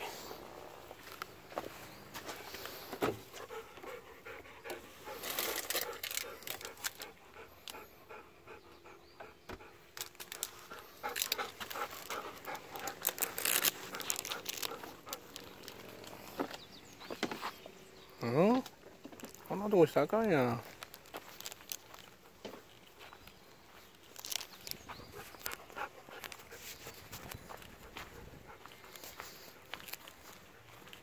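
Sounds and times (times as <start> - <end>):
dog panting: 2.2 - 16.6, 24.4 - 31.0
clicks and rustles: 4.7 - 7.8, 9.9 - 17.6, 20.7 - 23.0.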